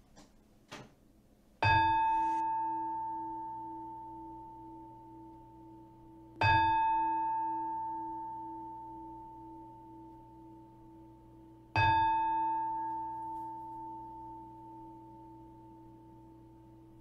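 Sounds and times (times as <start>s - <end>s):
singing bowl ringing: 1.6s - 17.0s.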